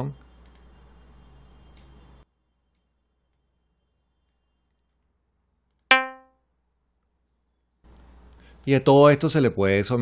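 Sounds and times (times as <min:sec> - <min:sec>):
synthesized plucked string note: 0:05.9 - 0:06.3.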